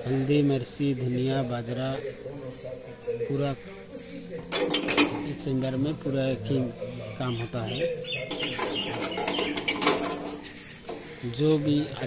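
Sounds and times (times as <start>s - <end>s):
metal clicks and rattles: 4.5s - 5.2s, 8.3s - 11.0s.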